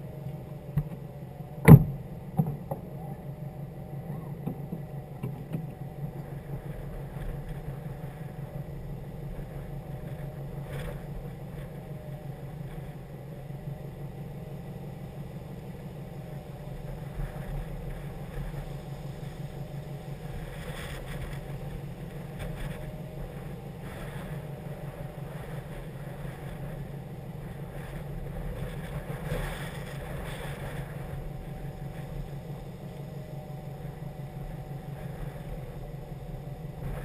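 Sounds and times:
car engine idling: 0:00.0 - 0:37.0.

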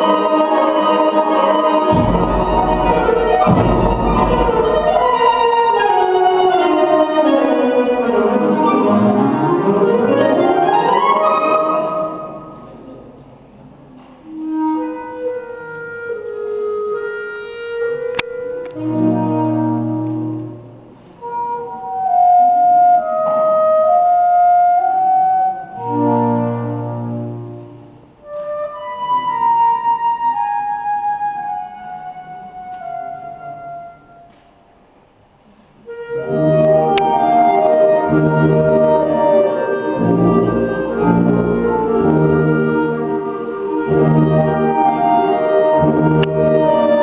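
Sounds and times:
wind band playing: 0:00.0 - 0:13.0, 0:14.2 - 0:34.4, 0:35.8 - 0:47.0.

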